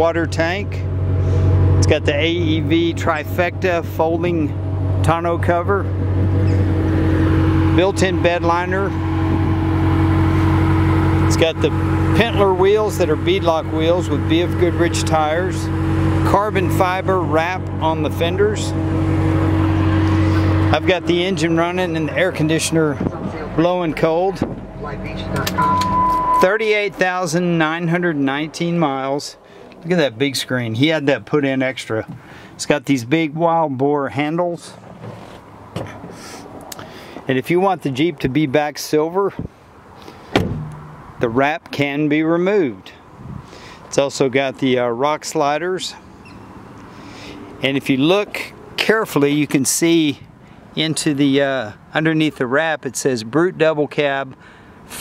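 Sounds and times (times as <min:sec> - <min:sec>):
engine idling with low hum: 0:00.0 - 0:55.0.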